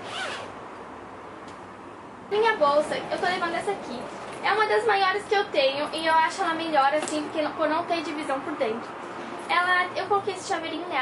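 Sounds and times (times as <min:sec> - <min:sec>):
zipper being drawn shut: 0:00.0 - 0:00.6.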